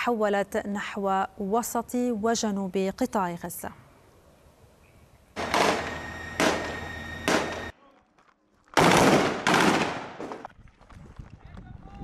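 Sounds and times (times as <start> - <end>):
gunshots with echo: 5.4 - 7.7, 8.8 - 10.5.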